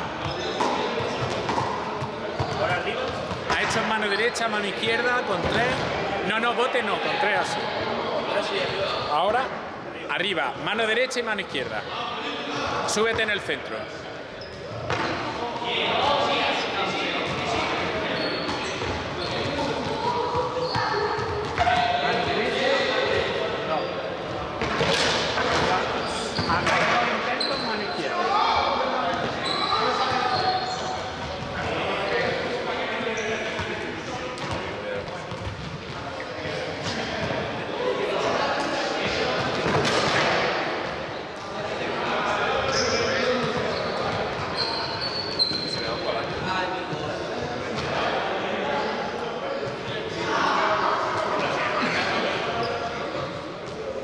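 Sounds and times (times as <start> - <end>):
echoing voices chattering: 0.0 - 54.0
balls bouncing on hard floor: 0.2 - 3.9, 34.4 - 36.1.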